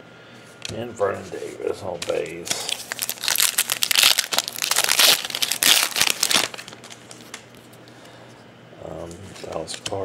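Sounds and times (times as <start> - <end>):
foil wrapper crinkling and tearing: 2.0 - 7.6.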